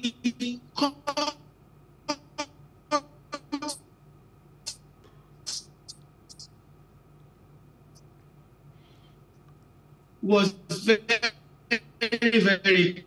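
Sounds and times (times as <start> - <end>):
high-pitched blips: 5.5 - 6.5
man speaking over broken call: 10.2 - 13.0.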